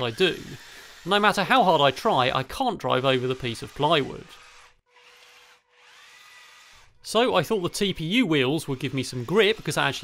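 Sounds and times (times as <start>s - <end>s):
electric motors whining: 0.0s - 2.2s, 2.9s - 7.0s, 7.7s - 10.0s.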